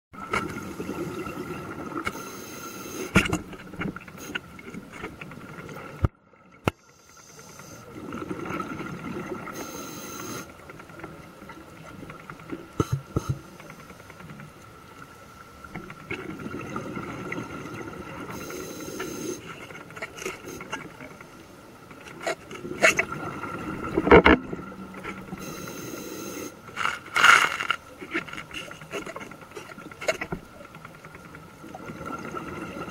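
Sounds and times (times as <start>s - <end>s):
diver breathing through regulator: 25.3s - 27.0s.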